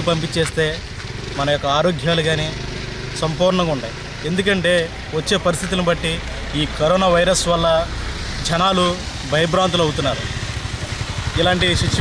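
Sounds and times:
man talking into microphone: 0.0 - 0.8, 1.4 - 2.6, 3.2 - 10.4, 11.3 - 12.0.

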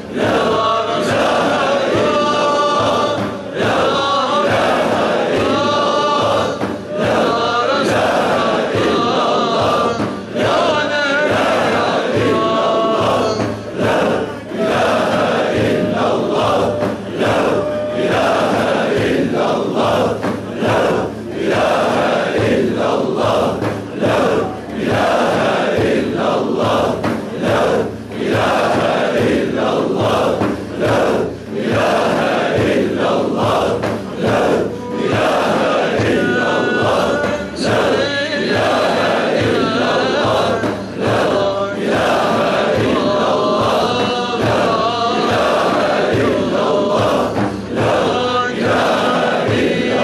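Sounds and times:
group chanting rhythmically: 0.0 - 50.0
high held melody voice: 11.4 - 20.2.

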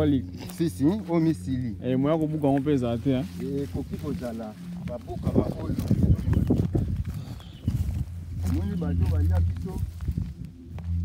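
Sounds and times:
footsteps through undergrowth: 0.0 - 11.0.

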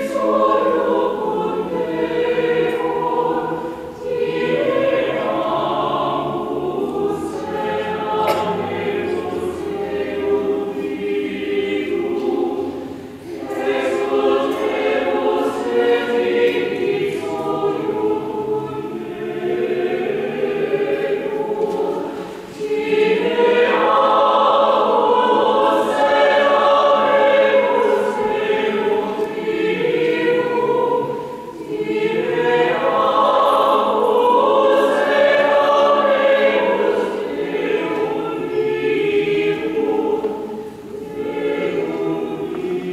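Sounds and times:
choir singing a hymn: 0.0 - 42.9.

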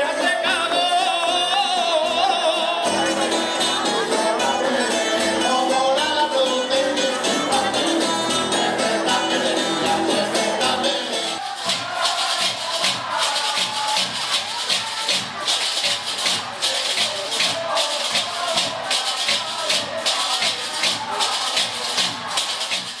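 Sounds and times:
faint voices: 0.0 - 23.0
rattling hand percussion: 0.2 - 23.0.

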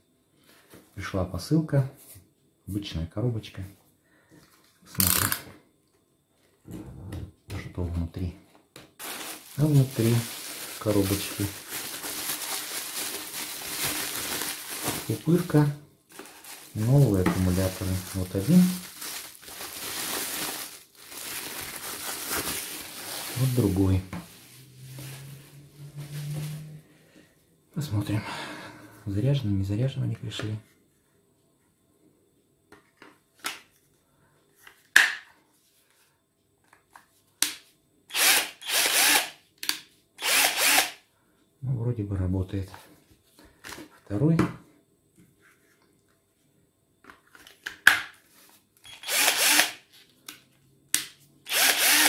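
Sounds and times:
bubble wrap crinkling and crackling: 9.0 - 26.7
drill motor whirring: 38.1 - 39.4, 40.2 - 41.0, 48.8 - 49.8, 51.5 - 52.0.

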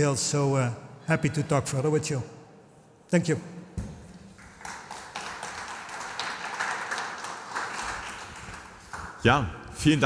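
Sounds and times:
audience applauding: 4.4 - 9.2.

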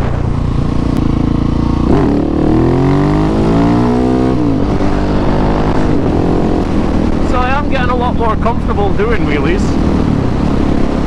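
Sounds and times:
motorcycle engine accelerating: 0.0 - 11.0.

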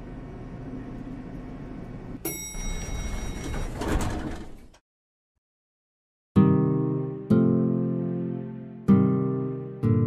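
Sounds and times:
elevator chime: 2.2 - 4.4
elevator doors sliding open: 2.6 - 4.8.

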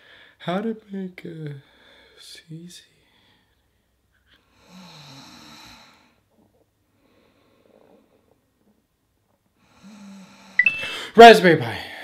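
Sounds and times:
faint breathing: 1.6 - 2.2, 9.6 - 11.2
man snoring: 4.6 - 6.2.

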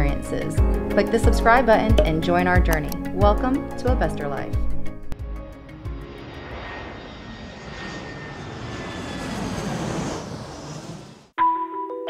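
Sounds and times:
airplane fly-by engine rush: 4.6 - 11.4.

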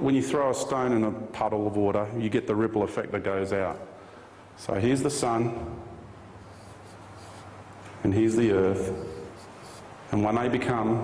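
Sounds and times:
steady low hum: 0.0 - 11.0
marker squeaking on whiteboard: 6.4 - 7.6, 8.8 - 10.0.

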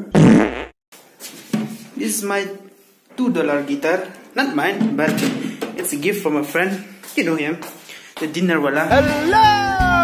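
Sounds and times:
buzzy fart-like burst: 0.0 - 0.8.

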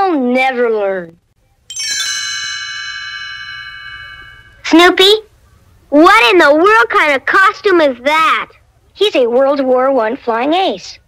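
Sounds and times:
bell-like chime ringing: 1.7 - 4.9.

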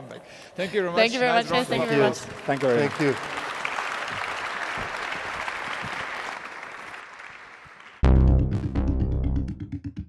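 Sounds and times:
audience applauding: 1.7 - 8.0.

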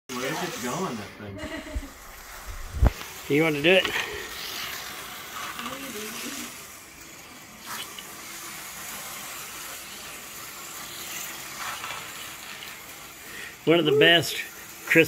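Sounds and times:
whir of small electric motors: 0.1 - 15.0.

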